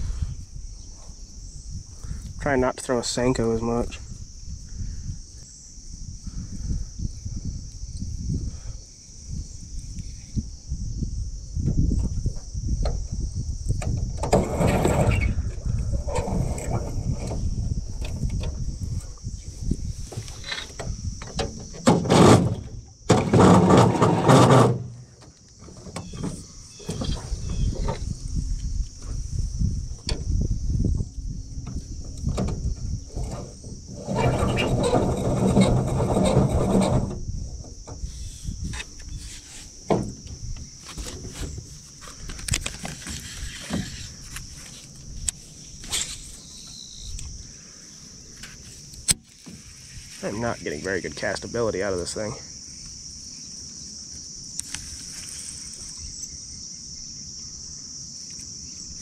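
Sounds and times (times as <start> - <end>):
high insect buzz: 0.0 - 59.0
wind rumble on microphone: 0.0 - 59.0.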